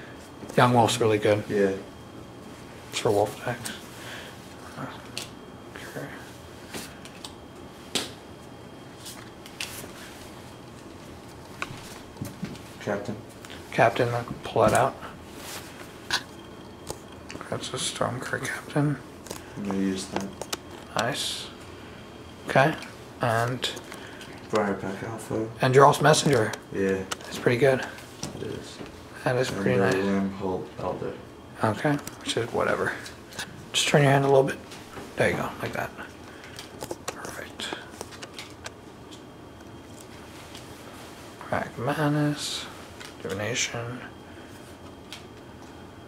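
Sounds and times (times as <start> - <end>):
playing cards flicking and rustling: 6.7 - 13.6, 19.2 - 21.2, 25.9 - 30.1, 34.7 - 40.9, 42.8 - 43.6.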